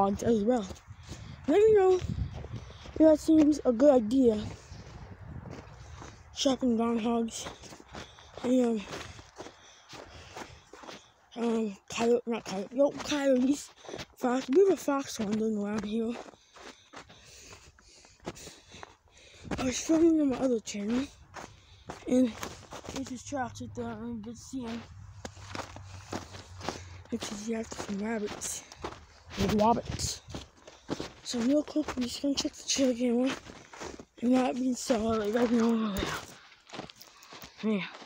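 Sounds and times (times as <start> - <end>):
footsteps in snow: 0.0 - 38.0.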